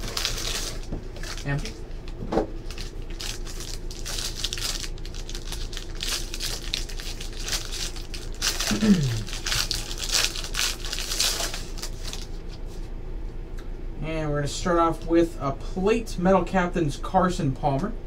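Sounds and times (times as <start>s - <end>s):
card pack wrapper crinkling and tearing: 0.0s - 1.8s, 2.6s - 12.4s.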